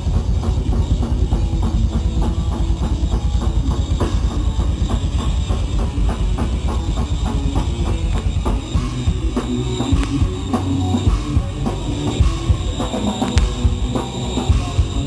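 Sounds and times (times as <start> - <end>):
electric guitars: 0.0 - 15.0
fast drum-kit beat: 0.0 - 15.0
heavy bass: 0.0 - 15.0.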